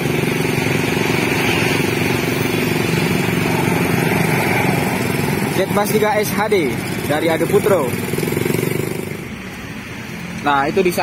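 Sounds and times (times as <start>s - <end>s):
vehicle engine passing: 0.0s - 11.0s.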